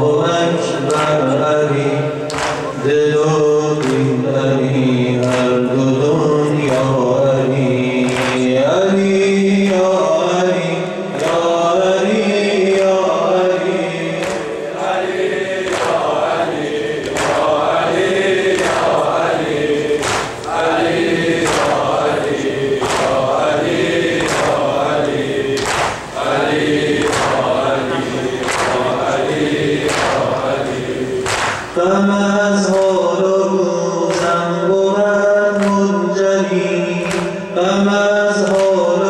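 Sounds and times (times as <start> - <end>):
man chanting a lament: 0.0 - 15.6, 27.3 - 31.1, 31.8 - 39.0
sharp rhythmic strikes: 12.6 - 31.9, 36.6 - 39.0.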